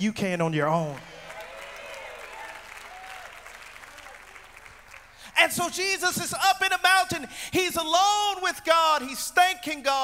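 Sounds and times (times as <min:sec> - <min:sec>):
crowd applauding: 0:00.8 - 0:05.4.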